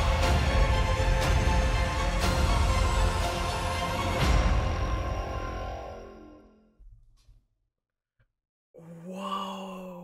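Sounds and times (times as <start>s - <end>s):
person humming mmm: 8.8s - 10.0s.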